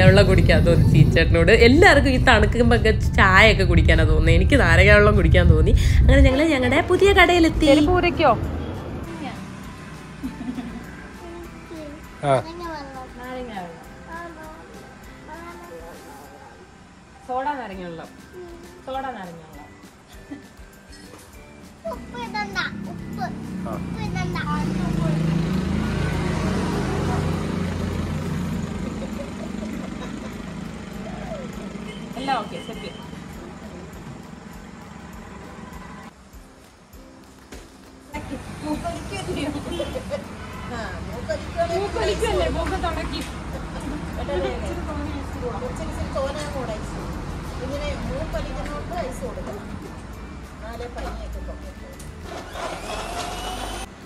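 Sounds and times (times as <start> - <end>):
vehicle engine running: 0.0 - 11.0, 22.6 - 35.8
blender motor whining: 52.3 - 53.9.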